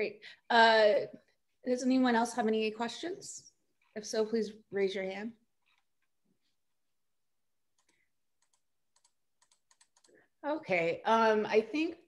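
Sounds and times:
typing on computer keyboard: 7.8 - 10.2.

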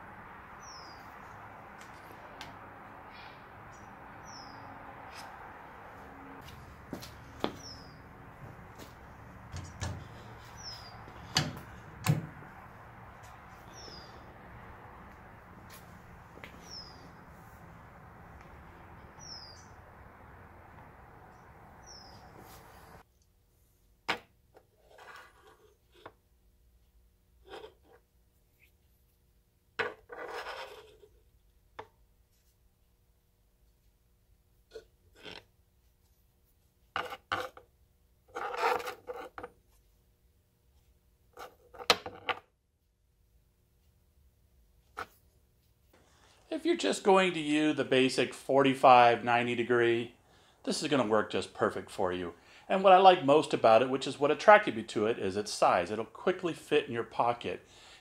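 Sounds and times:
shop hum: 0.0 - 23.0
handling clicks and rustles: 8.4 - 13.6.

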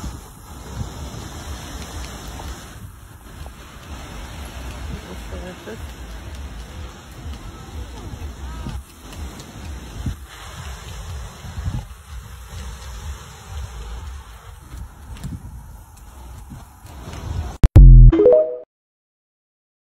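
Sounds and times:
surf hiss: 0.0 - 17.6
wind buffeting microphone: 0.0 - 17.6.

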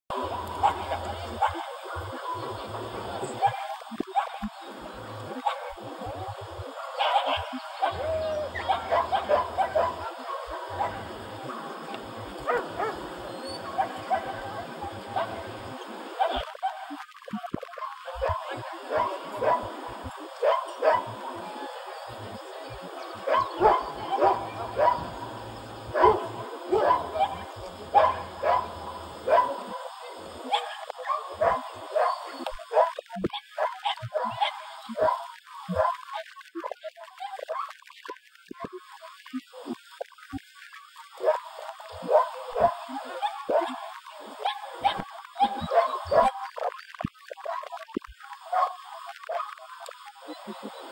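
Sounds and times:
dog barking: 0.2 - 2.6, 6.8 - 11.7, 12.4 - 13.0, 17.8 - 19.8, 20.4 - 21.2, 23.2 - 36.0, 41.2 - 43.8, 44.4 - 46.8, 48.5 - 49.5.

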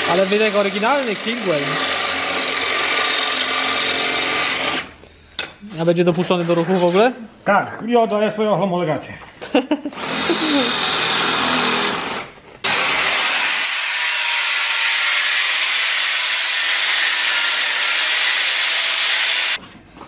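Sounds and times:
angle grinder cutting metal: 0.0 - 4.9, 10.0 - 19.6
cordless drill running: 0.0 - 4.9, 9.9 - 19.6.

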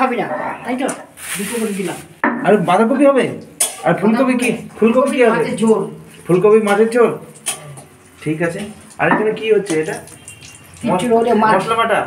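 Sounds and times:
metal pots clanking: 3.5 - 4.7, 6.6 - 10.9.

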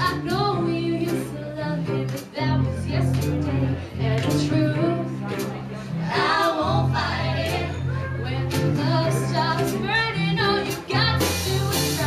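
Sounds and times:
woman singing: 0.0 - 5.4, 8.2 - 12.0
band playing: 0.0 - 12.0.

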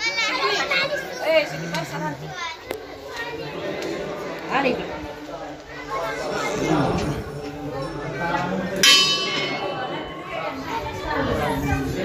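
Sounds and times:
brass bell ringing: 8.8 - 10.1.

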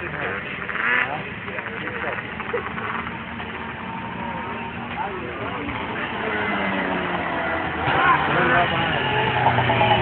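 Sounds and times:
snowmobile engine running: 0.0 - 10.0.

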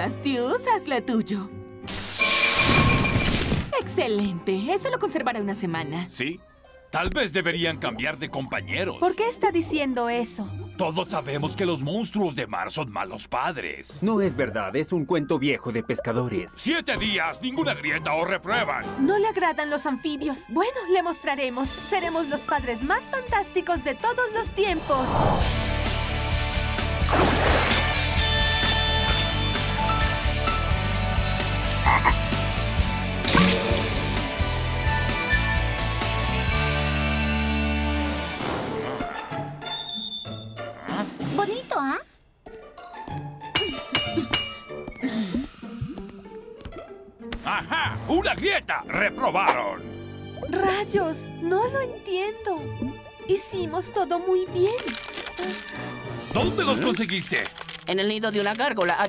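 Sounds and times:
background music: 0.0 - 59.0
cartoon frog croak: 31.7 - 32.2.

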